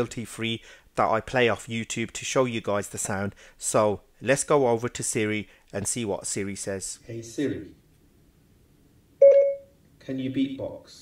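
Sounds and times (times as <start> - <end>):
short electronic chime: 9.2 - 9.7.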